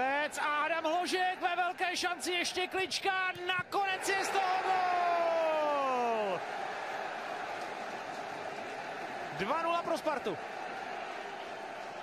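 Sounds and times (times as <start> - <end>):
commentator shouting goal: 0.0 - 6.4
crowd noise: 0.0 - 12.0.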